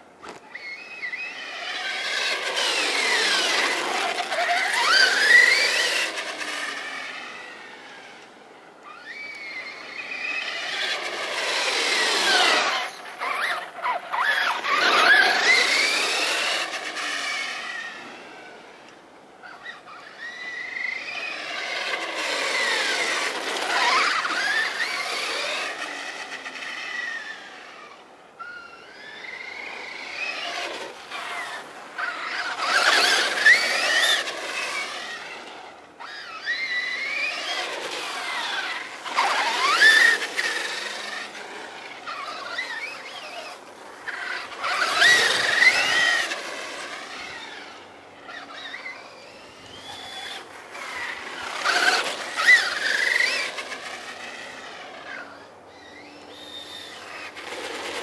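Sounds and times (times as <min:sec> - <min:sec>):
electric motor whining: 0:00.2 - 0:58.0.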